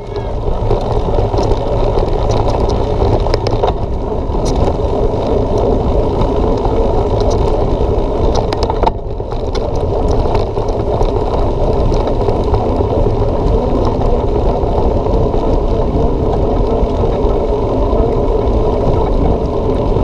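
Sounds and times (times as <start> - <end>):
bike clicks and rattles: 0.0 - 20.0
tyres rolling over dirt: 0.0 - 20.0
wind rumble on microphone: 0.0 - 20.0.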